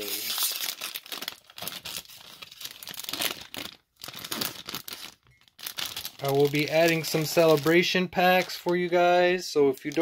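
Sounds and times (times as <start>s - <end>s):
plastic wrapping crinkling: 0.0s - 10.0s.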